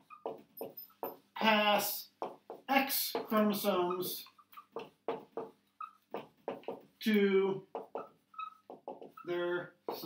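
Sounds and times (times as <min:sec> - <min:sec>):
marker squeaking on whiteboard: 0:00.0 - 0:01.3, 0:02.1 - 0:07.0, 0:07.6 - 0:10.0.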